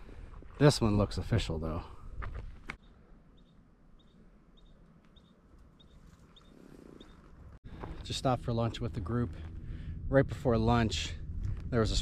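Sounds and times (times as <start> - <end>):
faint bird chirping: 2.8 - 7.3.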